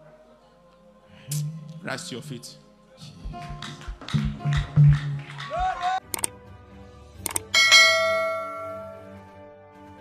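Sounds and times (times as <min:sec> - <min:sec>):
short clicks: 0:06.1 - 0:06.3, 0:07.2 - 0:07.5
bright bell ding: 0:07.6 - 0:09.1.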